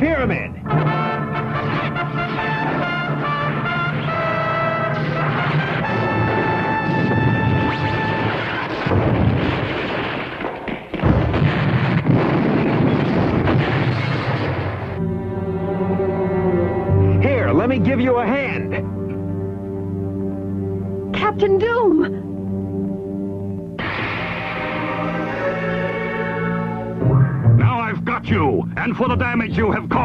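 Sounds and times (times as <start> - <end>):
orchestral action music with brass: 0.0 - 9.0, 23.8 - 30.0
explosion-like blasts: 0.7 - 15.0, 23.8 - 27.6.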